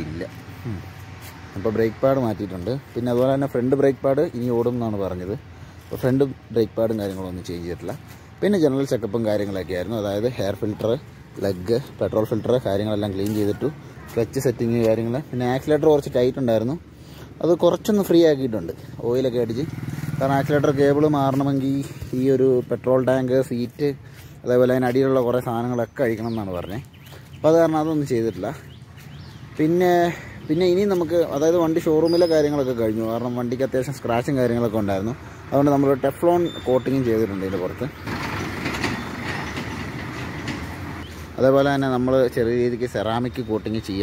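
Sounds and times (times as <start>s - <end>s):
man talking: 0.0s - 28.8s, 29.5s - 38.0s, 41.3s - 44.0s
motorcycle engine idling: 0.0s - 44.0s
tractor towing trailer: 35.4s - 41.7s.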